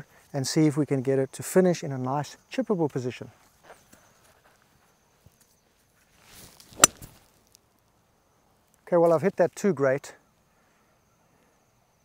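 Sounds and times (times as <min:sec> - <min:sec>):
golf club swishing: 0:06.2 - 0:07.2
golf club striking ball: 0:06.8 - 0:07.1.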